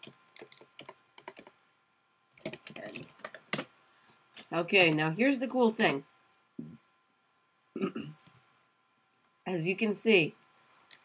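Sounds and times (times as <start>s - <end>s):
typing on computer keyboard: 0.0s - 1.6s, 2.4s - 3.7s.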